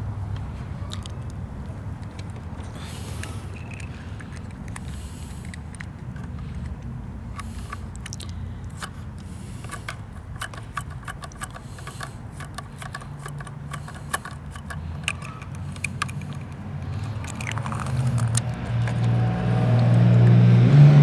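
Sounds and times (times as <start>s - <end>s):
steady low hum: 0.0s - 21.0s
toy truck tipper clicks and scrapes: 2.0s - 20.3s.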